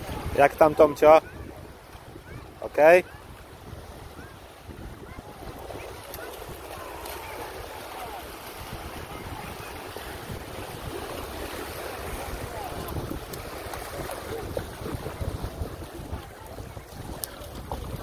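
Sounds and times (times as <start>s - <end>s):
surf washing on sand: 0.0s - 18.0s
wind buffeting microphone: 0.0s - 18.0s.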